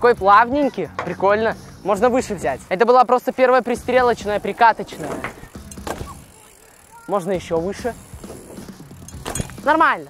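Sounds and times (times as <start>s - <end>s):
bike clicks and rattles: 3.1s - 10.0s
bike tyres rolling on ramp: 3.6s - 10.0s.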